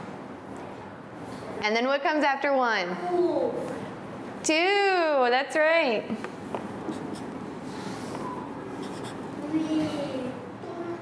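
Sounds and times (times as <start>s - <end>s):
room noise: 0.0s - 11.0s
marker scratching on paper: 6.8s - 8.2s, 8.8s - 9.3s.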